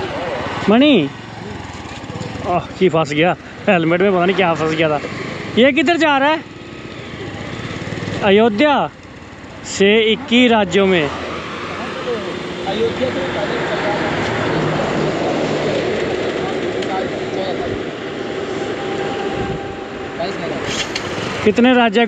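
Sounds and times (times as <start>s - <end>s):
motorcycle running slowly: 0.0s - 20.1s
wind noise on microphone: 19.2s - 19.9s.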